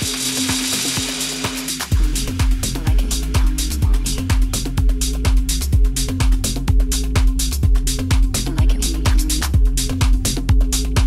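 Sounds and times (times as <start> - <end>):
electro dance music: 0.0 - 11.0.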